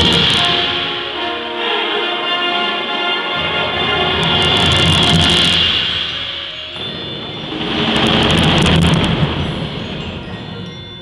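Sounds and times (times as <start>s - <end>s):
crashing cymbals: 0.0s - 1.6s, 3.8s - 11.0s
concert band playing: 0.0s - 10.7s.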